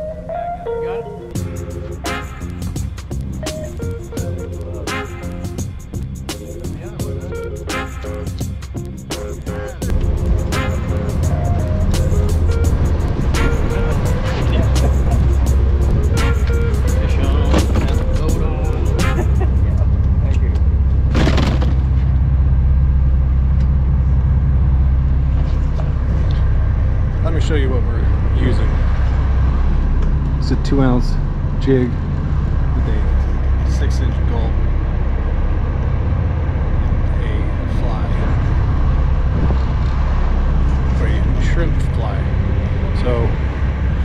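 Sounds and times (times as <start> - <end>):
guitar music: 0.0 - 20.2
boat engine rumbling: 0.0 - 44.0
faint voices: 13.7 - 15.6.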